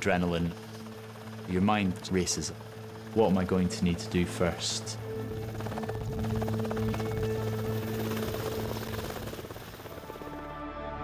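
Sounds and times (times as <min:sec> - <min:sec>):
helicopter engine rush: 0:00.0 - 0:10.5
helicopter rotor blade beat: 0:00.0 - 0:10.5.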